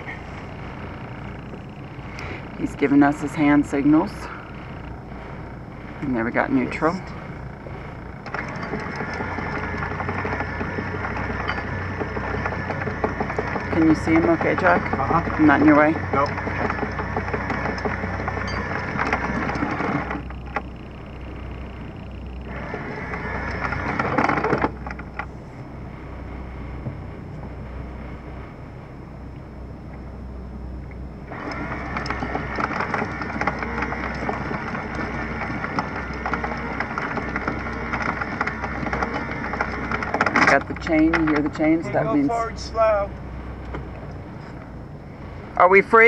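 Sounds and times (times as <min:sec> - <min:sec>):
anchor chain rattling through windlass: 0:00.0 - 0:28.3, 0:31.2 - 0:46.0
boat engine idling: 0:00.0 - 0:46.0.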